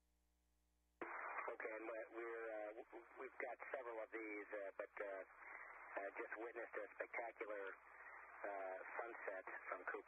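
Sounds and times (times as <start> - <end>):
person talking over radio: 1.0 - 5.3, 5.9 - 7.8, 8.4 - 10.0
faint steady hum: 1.0 - 10.0.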